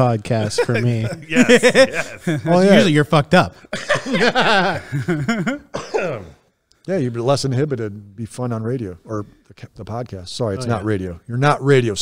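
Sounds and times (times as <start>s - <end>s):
men laughing: 0.3s - 3.0s, 3.6s - 6.3s
man clearing his throat: 5.4s - 6.4s.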